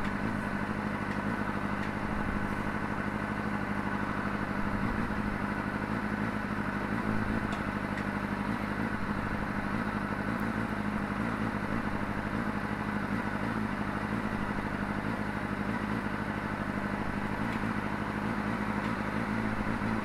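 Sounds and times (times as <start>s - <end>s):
motorcycle engine idling: 0.0s - 20.0s.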